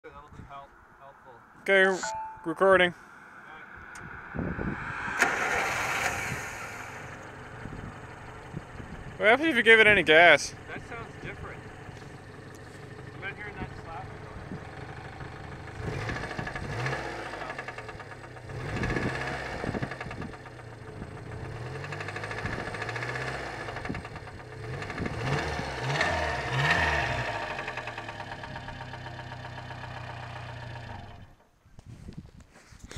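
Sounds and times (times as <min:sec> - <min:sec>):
truck engine revving: 0:03.6 - 0:31.3.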